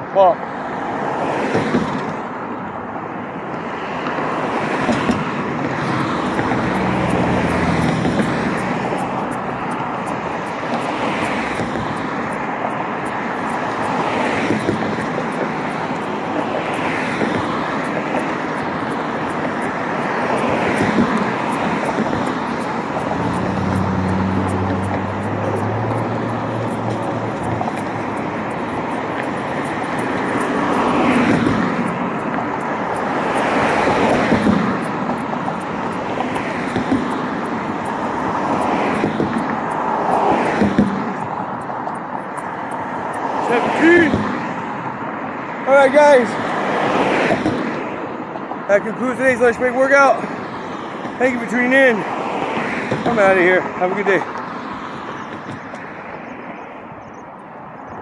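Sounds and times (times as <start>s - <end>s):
cars passing: 0.0s - 58.0s
road noise: 0.0s - 58.0s
low engine hum: 20.3s - 41.9s.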